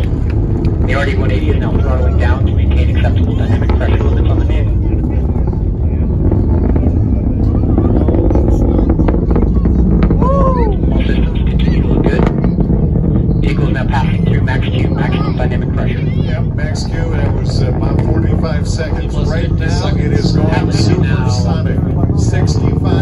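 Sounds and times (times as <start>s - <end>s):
distant rocket launch roar: 0.0s - 23.0s
spectators' voices: 0.0s - 23.0s.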